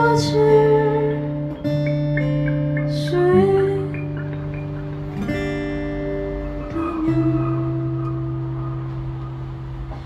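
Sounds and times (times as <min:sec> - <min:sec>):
guitars ringing chord: 0:00.0 - 0:10.0.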